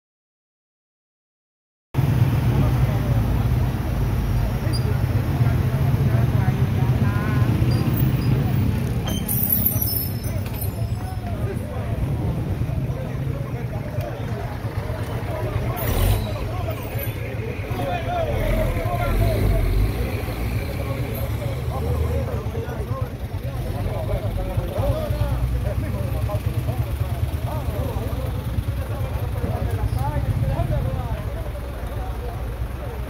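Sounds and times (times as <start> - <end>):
people talking over one another: 2.0 - 33.0.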